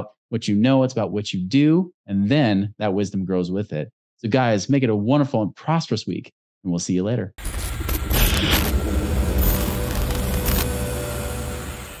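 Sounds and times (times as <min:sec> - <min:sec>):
glitchy noise burst: 0:07.4 - 0:12.0
music sting with deep bass: 0:07.8 - 0:12.0.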